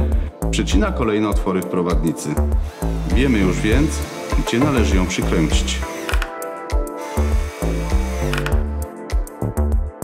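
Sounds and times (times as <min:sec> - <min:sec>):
background music with bass line: 0:00.0 - 0:10.0
cordless drill driving screw: 0:02.6 - 0:06.4, 0:07.0 - 0:08.7.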